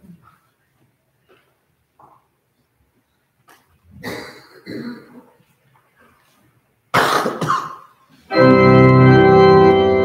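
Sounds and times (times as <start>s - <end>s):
person coughing: 4.0s - 5.4s, 7.0s - 8.0s.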